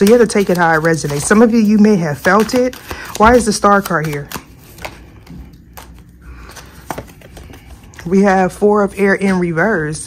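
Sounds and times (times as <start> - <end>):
cards snapping: 0.0 - 7.8
cards being shuffled: 0.0 - 8.1.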